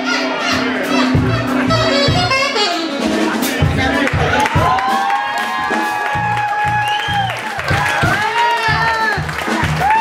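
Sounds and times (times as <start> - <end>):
saxophone holding high note: 0.0 - 3.4
electric bass notes pulsing: 0.0 - 4.8
funk jazz band: 0.0 - 10.0.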